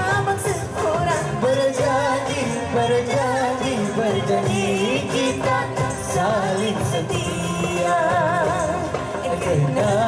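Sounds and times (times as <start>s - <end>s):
amplified person singing pop: 0.0s - 10.0s
backing music: 0.0s - 10.0s.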